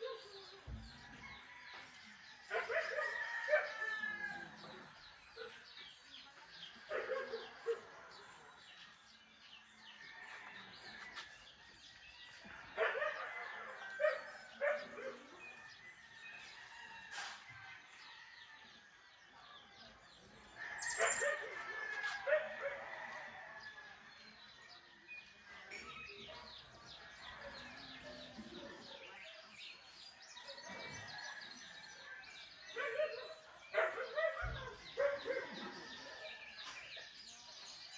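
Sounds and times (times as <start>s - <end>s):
dog barking: 2.5s - 3.8s, 6.8s - 8.0s, 12.7s - 15.4s, 32.6s - 36.1s
birds chirping and calling: 19.8s - 23.1s.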